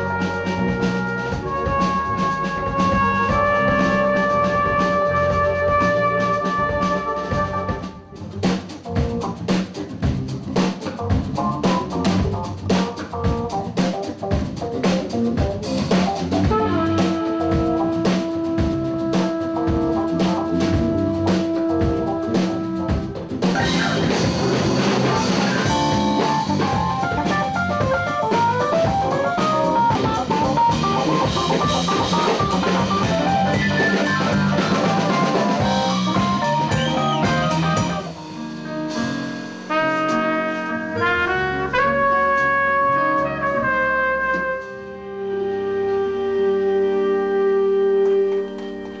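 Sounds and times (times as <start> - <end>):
trumpet: 0.0 - 8.6, 15.9 - 49.0
drum kit: 0.0 - 49.0
live jazz band: 0.0 - 49.0.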